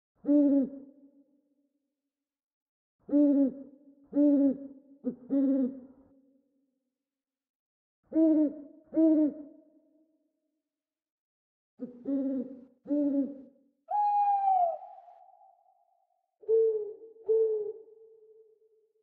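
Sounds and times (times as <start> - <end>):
owl hooting: 12.1 - 15.8, 16.4 - 18.0.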